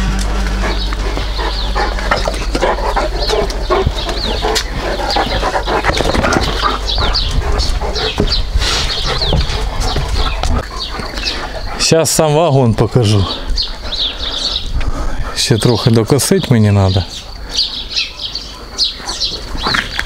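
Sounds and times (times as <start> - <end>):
footsteps on paving slabs: 0.1 - 11.8
small birds chirping: 0.2 - 20.0.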